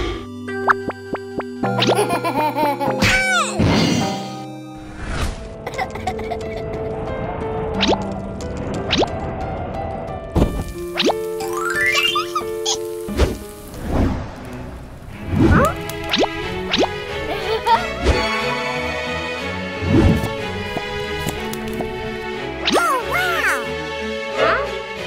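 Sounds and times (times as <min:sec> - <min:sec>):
light cartoon background music: 0:00.0 - 0:25.0.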